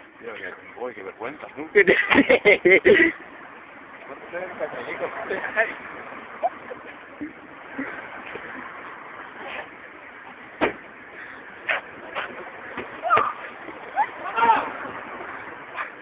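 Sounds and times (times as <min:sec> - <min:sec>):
outdoor background noise: 0:00.0 - 0:16.0.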